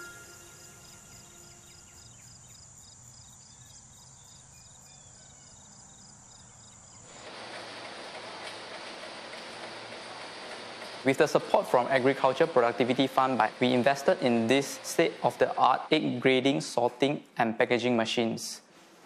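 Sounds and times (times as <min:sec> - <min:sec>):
steady high tone: 0:00.0 - 0:01.9
steady hiss: 0:07.0 - 0:16.8.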